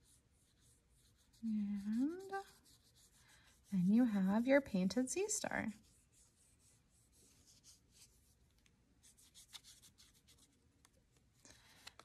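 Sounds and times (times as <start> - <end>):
paintbrush scratching on paper: 0.0 - 8.4, 9.0 - 10.6.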